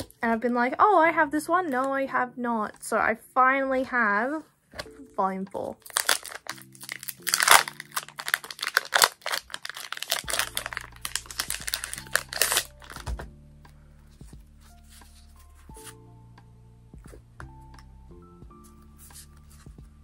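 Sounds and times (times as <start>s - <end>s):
background music: 0.0s - 20.0s
foil pack tearing and crinkling: 5.8s - 13.0s.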